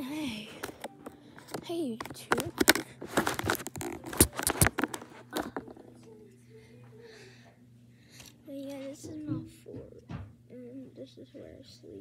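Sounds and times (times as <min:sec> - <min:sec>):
phone handling clicks and scrapes: 0:00.6 - 0:05.5.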